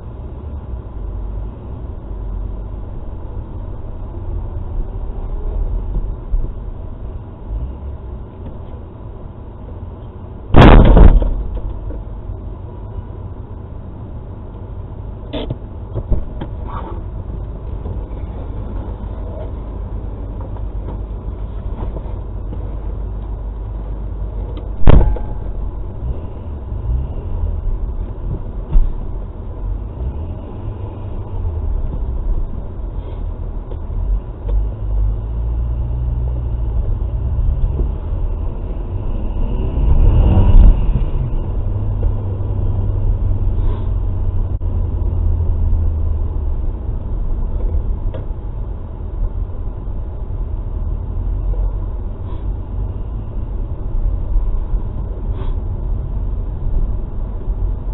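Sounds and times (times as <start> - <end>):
engine and tyre rumble: 0.0 - 57.9
sharp thump: 10.5 - 11.7, 24.8 - 26.6.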